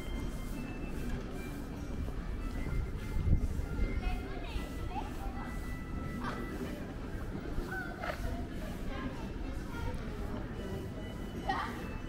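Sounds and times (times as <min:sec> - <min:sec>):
indistinct voices of passers-by: 0:00.0 - 0:12.0.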